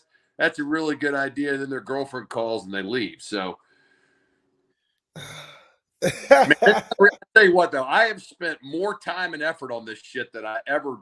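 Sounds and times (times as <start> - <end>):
man exhaling: 5.2 - 6.5
laughter: 6.0 - 7.2
talking: 6.0 - 7.2.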